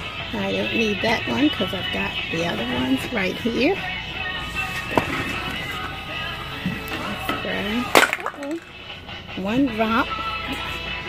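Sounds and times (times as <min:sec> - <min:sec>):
background music with held tones: 0:00.0 - 0:11.0
item clattering from shopping cart: 0:04.7 - 0:06.0.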